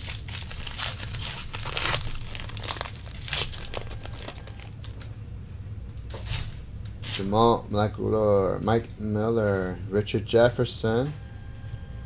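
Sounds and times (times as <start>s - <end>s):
wrapper tearing and crinkling: 0.0s - 5.1s.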